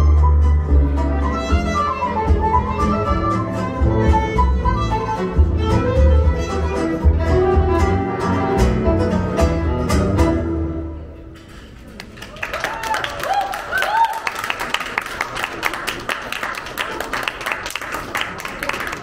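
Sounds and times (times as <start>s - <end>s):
violin melody: 0.0s - 11.1s
double bass: 0.0s - 11.4s
acoustic guitar: 0.0s - 11.9s.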